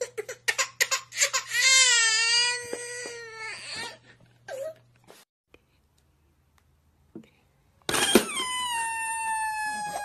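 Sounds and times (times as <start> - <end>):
infant crying: 0.0 - 4.8, 8.1 - 10.0.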